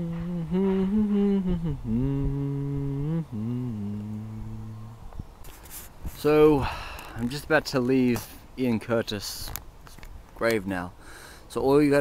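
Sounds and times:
man humming: 0:00.0 - 0:05.1
rustle: 0:00.0 - 0:12.0.

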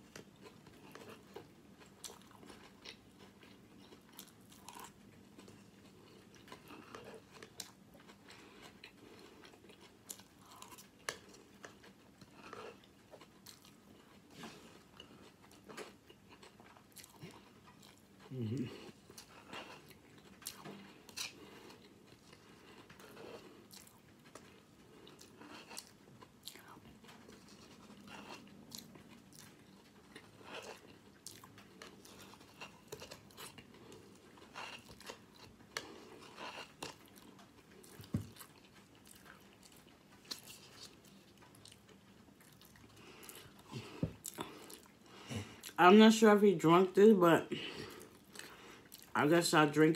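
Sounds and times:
chewing soggy cereal: 0:00.0 - 0:49.9.

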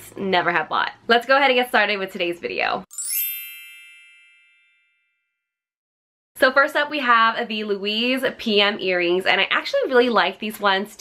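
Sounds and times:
bright chime ringing: 0:02.9 - 0:05.4.

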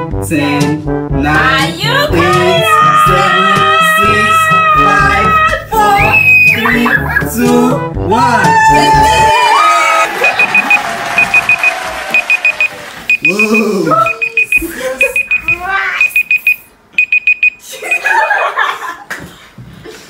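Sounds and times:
timer alarm high beeps: 0:06.0 - 0:07.0, 0:10.2 - 0:18.1.

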